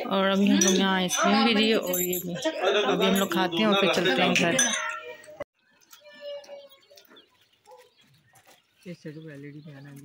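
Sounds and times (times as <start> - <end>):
faint outdoor background sounds: 0.0 - 10.0.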